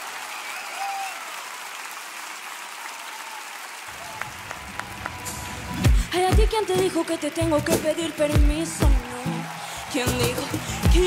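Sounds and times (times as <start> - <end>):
audience applauding: 0.0 - 11.0
backing music: 4.3 - 11.0.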